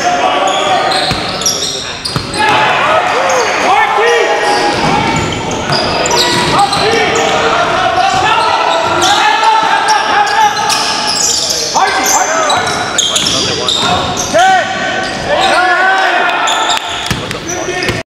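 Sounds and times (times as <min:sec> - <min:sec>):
players calling out: 0:00.0 - 0:18.0
sneaker squeaks: 0:00.4 - 0:02.6, 0:04.4 - 0:07.3, 0:08.1 - 0:14.4.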